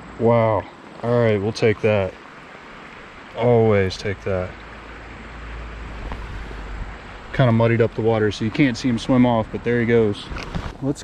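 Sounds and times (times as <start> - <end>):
creek water sloshing: 0.0 - 10.9
wind rumble on microphone: 5.8 - 7.6, 9.5 - 11.0.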